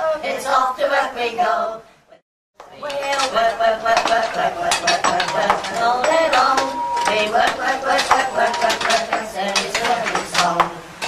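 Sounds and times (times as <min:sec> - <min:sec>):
voices: 0:02.6 - 0:11.0
metal tools striking rock: 0:04.0 - 0:10.4.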